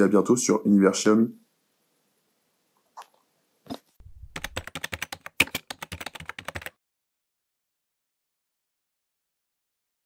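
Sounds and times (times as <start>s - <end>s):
rapid keyboard key clicks: 4.1s - 6.8s.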